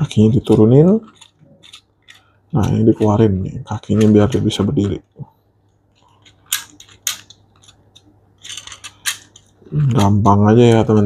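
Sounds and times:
plastic toy joints clicking: 0:00.0 - 0:03.2, 0:06.0 - 0:11.0.

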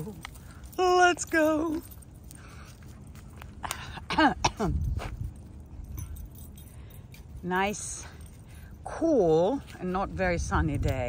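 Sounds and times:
wind rumble on microphone: 0:03.2 - 0:11.0.

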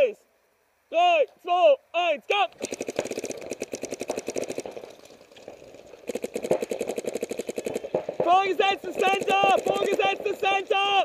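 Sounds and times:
paintball marker rapid firing: 0:02.6 - 0:10.6.

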